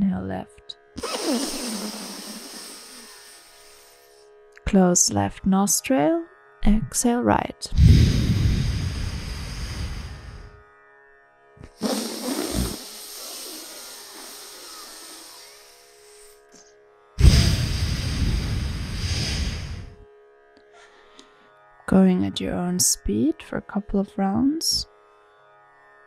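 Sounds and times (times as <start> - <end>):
breathing through nostril: 1.0 - 4.2, 7.8 - 10.6, 11.7 - 16.5, 17.2 - 20.0, 20.8 - 21.5.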